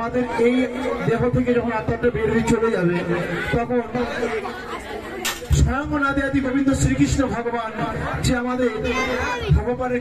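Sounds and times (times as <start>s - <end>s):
man talking into microphone: 0.0s - 4.4s, 5.5s - 10.0s
voices chattering: 0.0s - 10.0s.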